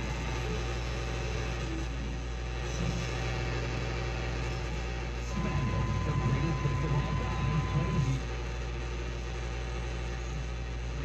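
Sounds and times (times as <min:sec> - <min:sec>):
radio static hiss: 0:00.0 - 0:11.0
broadcast voice: 0:05.4 - 0:08.2.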